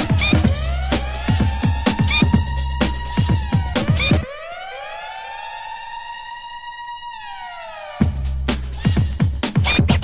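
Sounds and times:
electronic dance drum beat: 0.0 - 4.3, 8.0 - 10.0
siren-like synth tone: 0.0 - 8.1.

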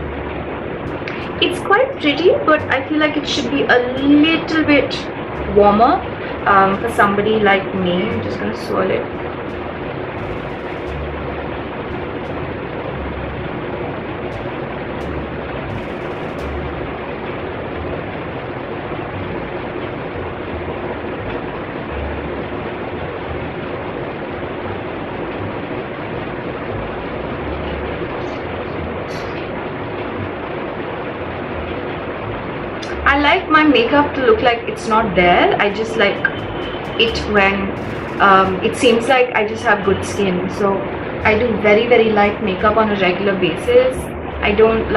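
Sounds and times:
electric fan running: 0.0 - 44.9.

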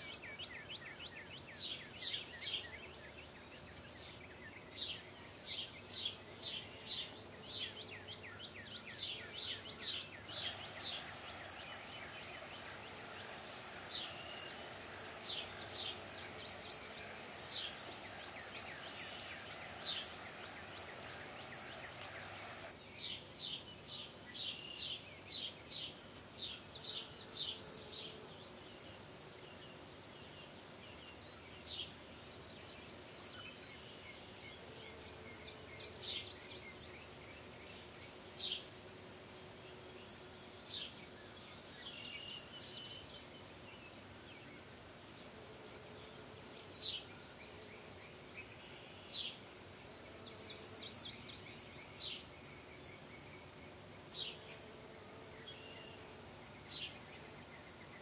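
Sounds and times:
insect chorus drone: 0.0 - 58.0
soft hiss: 0.0 - 58.0.

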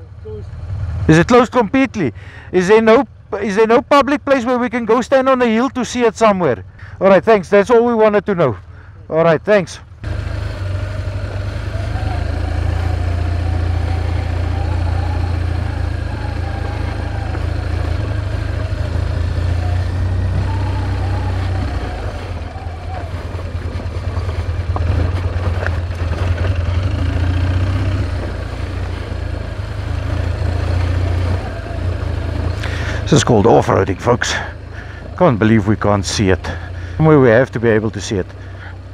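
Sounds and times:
motorcycle engine revving: 0.0 - 3.4, 9.8 - 38.9.

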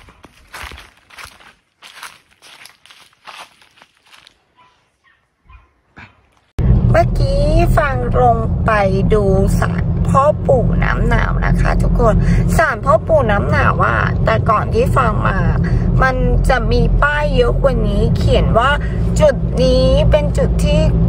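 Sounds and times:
footsteps on dry leaves: 0.0 - 5.2
car engine and road noise: 6.6 - 21.0
woman speaking: 6.9 - 21.0.

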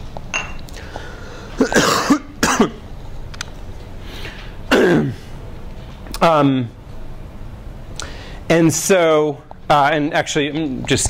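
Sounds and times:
man coughing: 1.6 - 2.8, 4.7 - 5.3.

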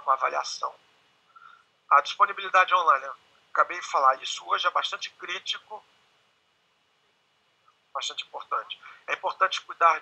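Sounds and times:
man speaking: 0.0 - 0.8, 1.9 - 5.9, 8.0 - 10.0
faint background hiss: 0.0 - 10.0.

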